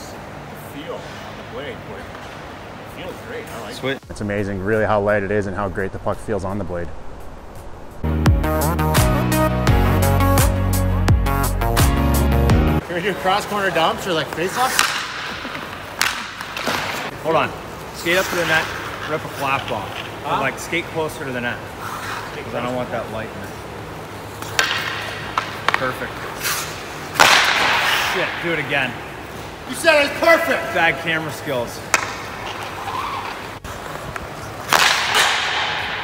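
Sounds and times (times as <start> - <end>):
hockey stick striking puck: 14.2 - 17.1, 18.0 - 20.2, 24.4 - 28.9, 31.7 - 36.0.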